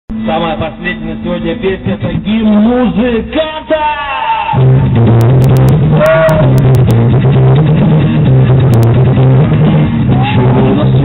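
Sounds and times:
electric bass line: 0.1s - 11.0s
amplified acoustic guitar: 4.4s - 11.0s.

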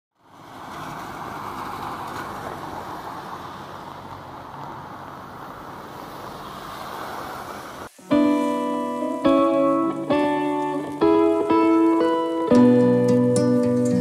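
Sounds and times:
steady rushing outdoor ambience: 0.3s - 14.0s.

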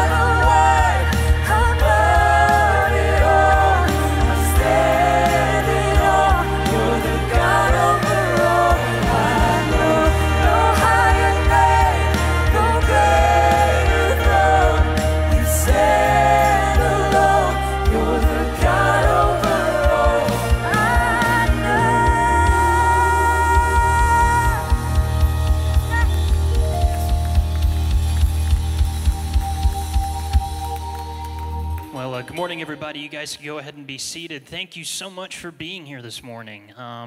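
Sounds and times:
women singing: 0.0s - 25.2s
steady drum beat: 0.0s - 30.6s
bass guitar: 0.0s - 32.3s
worship band playing: 0.0s - 34.2s.

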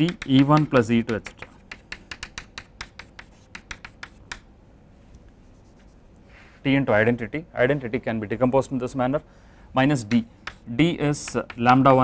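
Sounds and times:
chalk tapping and scratching on blackboard: 0.0s - 4.5s, 9.9s - 12.0s.

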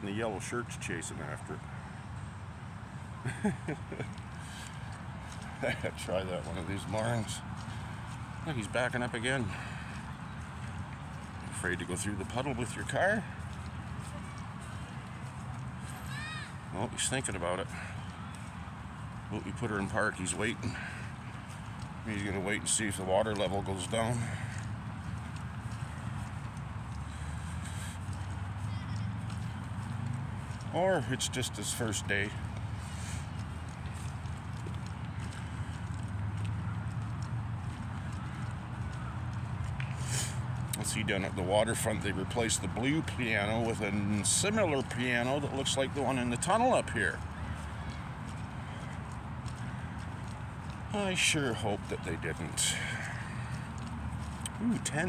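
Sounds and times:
footsteps walking: 3.2s - 41.9s, 42.6s - 55.0s.

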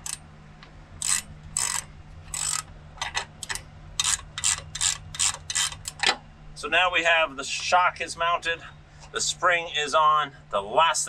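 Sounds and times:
ratcheting wrench clicking: 0.0s - 0.2s, 1.0s - 6.2s.

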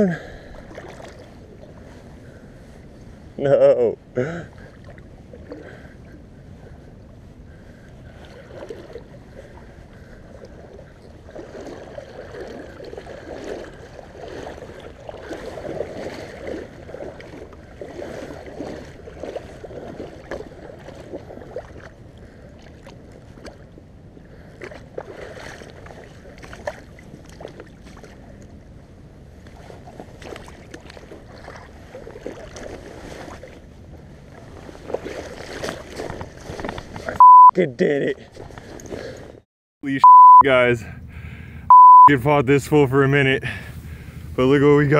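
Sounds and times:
river water splashing: 0.0s - 39.4s.

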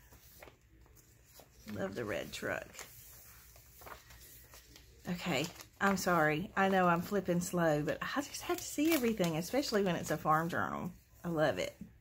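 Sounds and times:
paper page turning: 0.0s - 7.3s, 8.2s - 10.3s
soft paper ticks: 2.4s - 7.1s, 8.3s - 9.8s.

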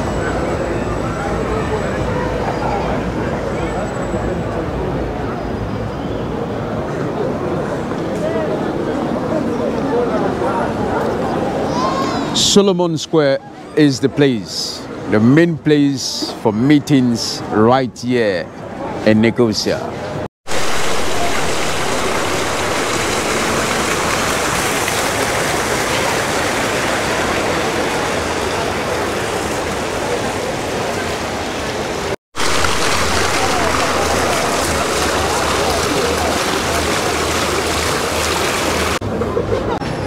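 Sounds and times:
fountain water splashing into basin: 20.5s - 39.0s.

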